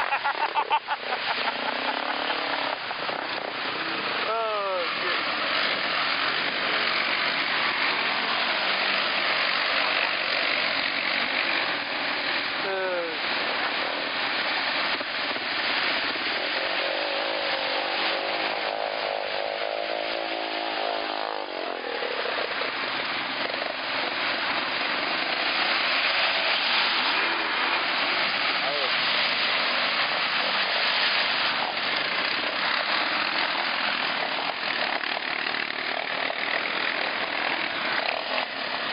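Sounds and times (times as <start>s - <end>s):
atv engines revving: 0.0s - 38.9s.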